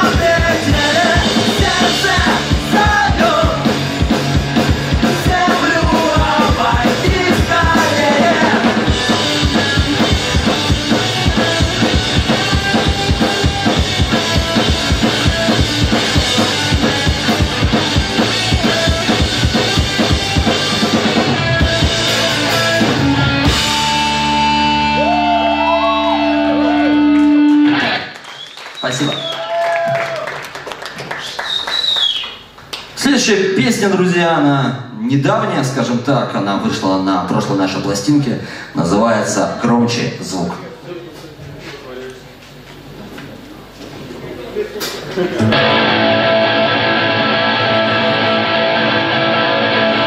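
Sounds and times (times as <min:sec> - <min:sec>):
ska-punk band playing live: 0:00.0 - 0:28.0, 0:45.3 - 0:50.0
audience clapping and whistling: 0:26.7 - 0:33.0.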